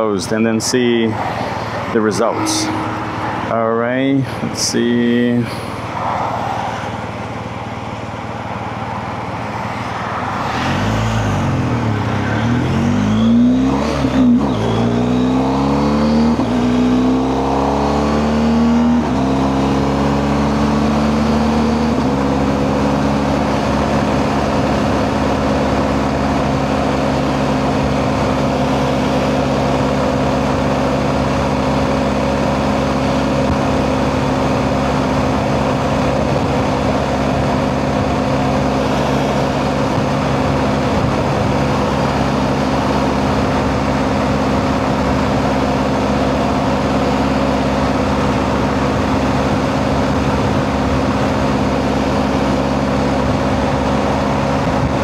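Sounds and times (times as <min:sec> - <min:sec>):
rush of noise: 0:00.1 - 0:16.7, 0:33.5 - 0:55.0
motorcycle engine accelerating: 0:00.8 - 0:06.0, 0:07.0 - 0:55.0.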